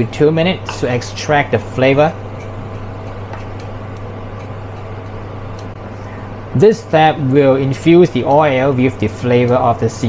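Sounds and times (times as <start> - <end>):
steady low hum: 0.0 - 10.0
peppercorns sizzling in oil: 0.7 - 6.1
spatula ticking on pan: 2.0 - 5.8.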